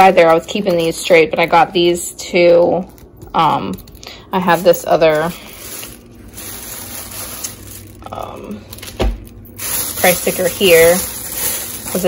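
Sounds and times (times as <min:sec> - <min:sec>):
plastic bag rustling: 0:02.8 - 0:12.0.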